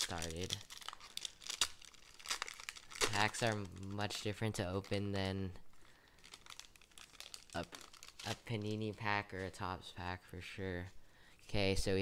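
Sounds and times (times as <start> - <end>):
foil wrapper crinkling: 0.0 - 9.6.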